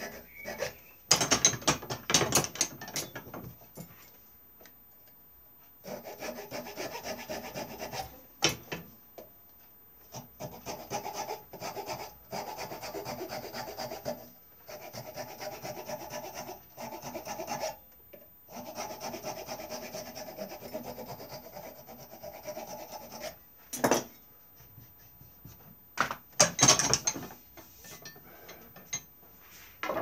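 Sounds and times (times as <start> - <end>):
hand file rasping on wood: 0.0 - 0.8, 5.8 - 8.2, 10.1 - 17.8, 18.5 - 23.4.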